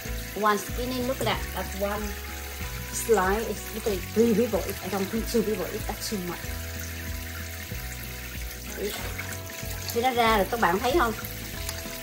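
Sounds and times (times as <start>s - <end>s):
background music: 0.0s - 12.0s
tap water trickling into pot: 0.0s - 12.0s.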